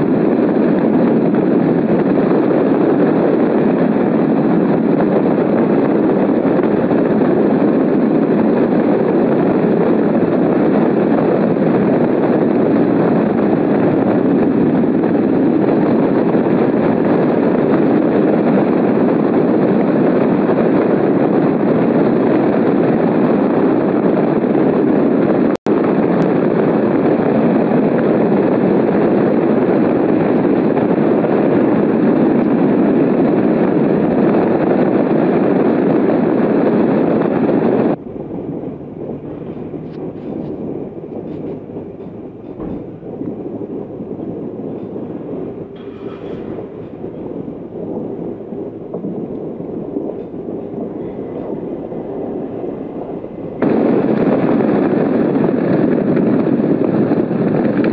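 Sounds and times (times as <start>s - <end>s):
wind rushing over microphone: 0.0s - 57.9s.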